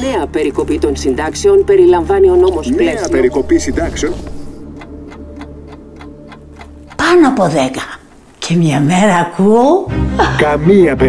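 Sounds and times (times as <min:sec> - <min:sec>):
steady ticking: 0:00.2 - 0:09.4.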